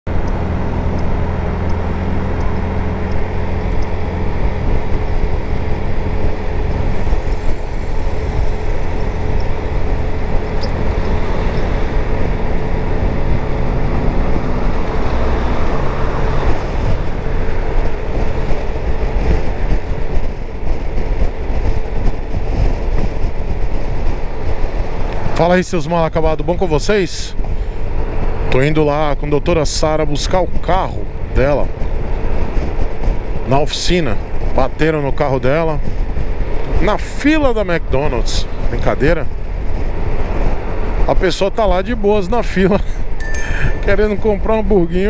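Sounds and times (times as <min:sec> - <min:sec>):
scooter engine drone: 0:00.1 - 0:25.3
wind rush on microphone: 0:00.1 - 0:45.0.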